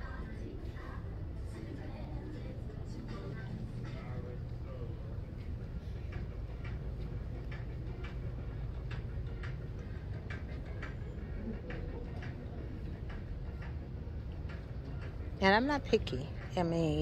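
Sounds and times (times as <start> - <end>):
low background hum: 0.0 - 17.0.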